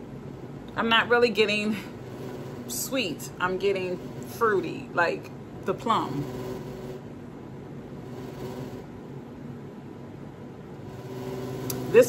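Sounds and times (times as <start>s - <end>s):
steady low room hum: 0.0s - 12.0s.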